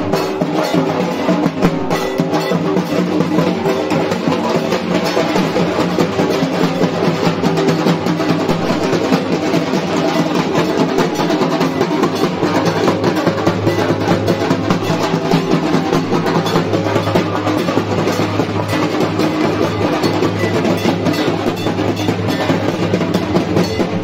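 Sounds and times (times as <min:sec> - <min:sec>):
barrel drums beaten fast: 0:00.0 - 0:24.0.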